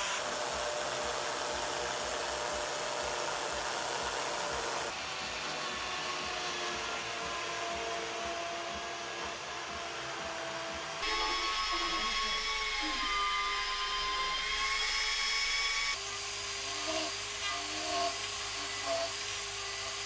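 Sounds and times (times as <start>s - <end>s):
chainsaw cutting ice: 0.0s - 13.1s.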